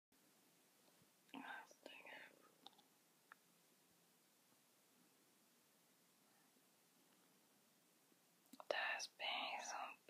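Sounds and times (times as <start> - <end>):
faint steady hiss: 0.1 - 10.0
person whispering: 1.3 - 2.7, 8.6 - 10.0.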